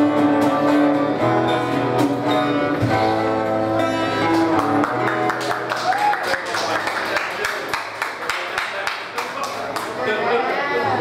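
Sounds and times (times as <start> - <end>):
live acoustic song: 0.0 - 8.2
scattered hand clapping: 4.2 - 10.0
people talking: 6.4 - 11.0.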